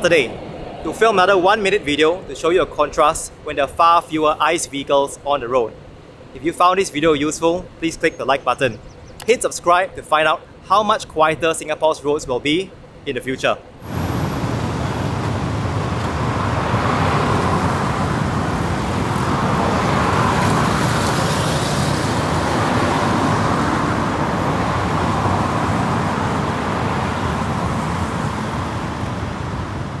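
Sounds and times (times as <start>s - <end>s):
road traffic: 0.0s - 30.0s.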